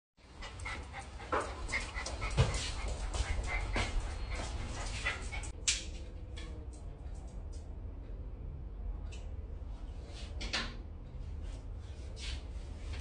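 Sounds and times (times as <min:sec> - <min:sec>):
dog panting: 0:00.3 - 0:05.5.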